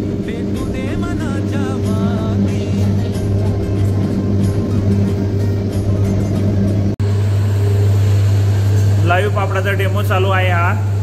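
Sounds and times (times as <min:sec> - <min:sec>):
electric motor hum: 0:00.0 - 0:11.0.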